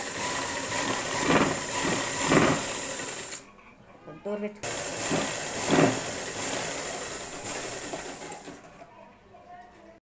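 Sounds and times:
sewing machine running: 0.0s - 3.4s, 4.6s - 8.6s.

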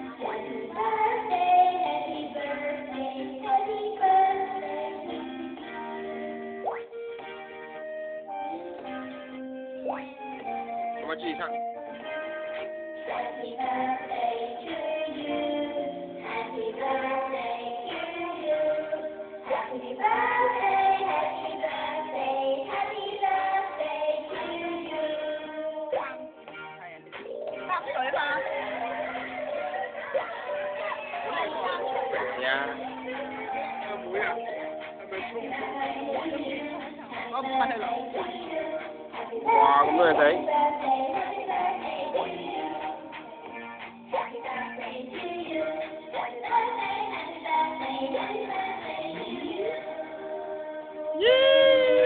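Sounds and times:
child singing into a microphone: 0.0s - 6.2s, 13.0s - 26.3s, 30.7s - 43.1s, 44.2s - 51.3s
karaoke backing music: 0.0s - 52.0s.

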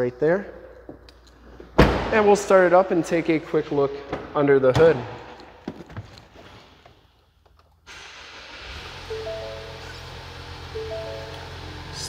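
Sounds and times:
car engine starting and idling: 7.8s - 12.0s
dashboard warning chime: 9.1s - 12.0s.

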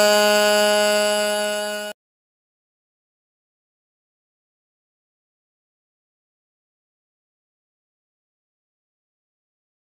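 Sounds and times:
long held buzzy note: 0.0s - 2.0s.

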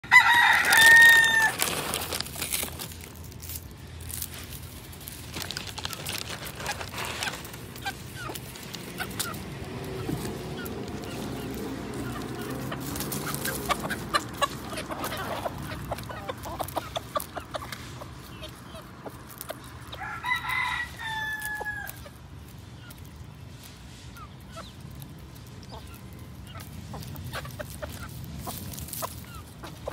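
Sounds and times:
rooster crowing: 0.0s - 1.8s, 19.9s - 22.0s
chickens clucking: 0.0s - 29.9s.

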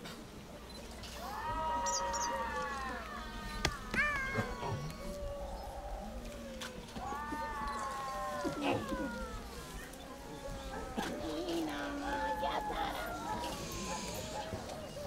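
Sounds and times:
cat meowing: 3.9s - 5.2s.

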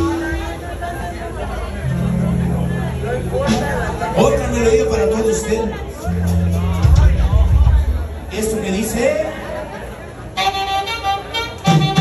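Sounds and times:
bass guitar: 0.0s - 9.1s
melodic lead instrument: 1.6s - 9.4s.

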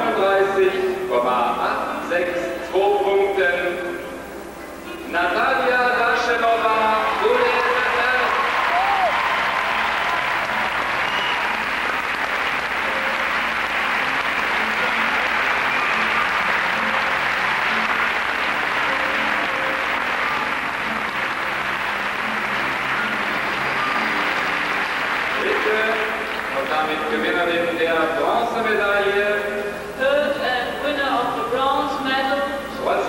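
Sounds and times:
audience applauding: 7.0s - 27.5s.

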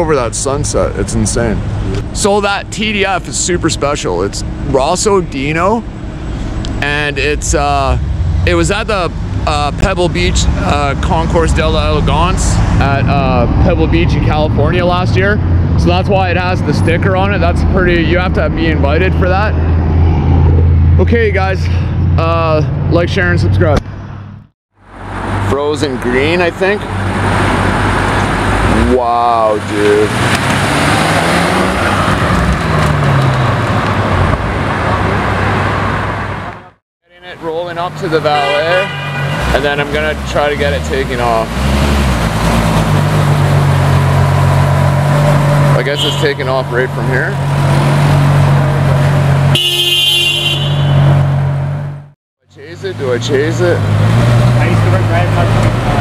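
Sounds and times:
city traffic: 0.0s - 56.0s
car horn: 38.0s - 40.2s, 45.8s - 46.8s, 49.4s - 51.4s.

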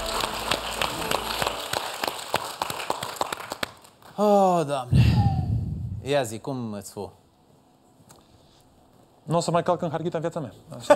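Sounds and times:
people clapping: 0.0s - 4.3s.

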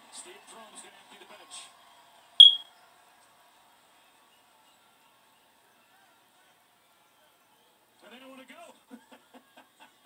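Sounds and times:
high-pitched electronic beep: 2.4s - 2.6s.

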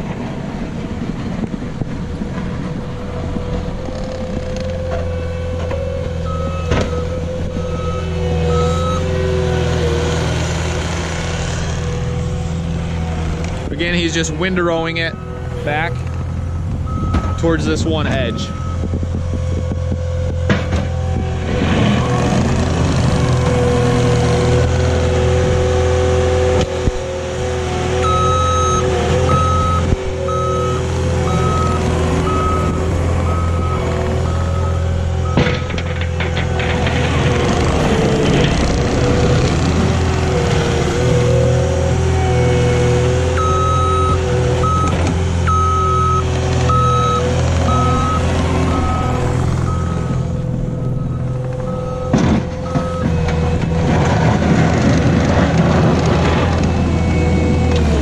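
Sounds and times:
diesel engine under load: 0.0s - 58.0s
plow blade pushing snow: 0.0s - 58.0s
reversing alarm beeps: 6.2s - 9.2s, 15.0s - 19.0s, 28.0s - 35.9s, 43.3s - 53.2s.

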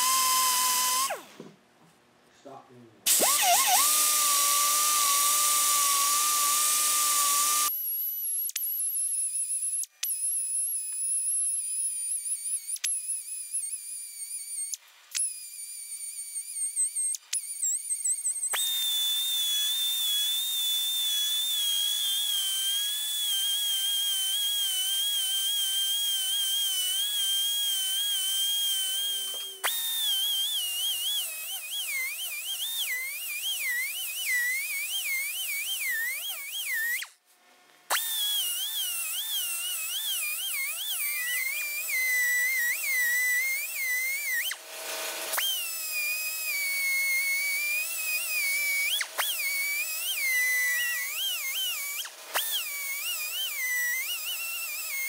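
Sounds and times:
die grinder whining: 0.0s - 1.5s, 3.1s - 37.2s, 37.9s - 55.0s.

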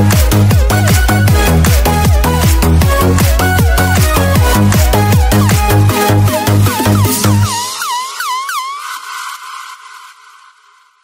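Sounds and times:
swooping synth effect: 0.1s - 10.2s.

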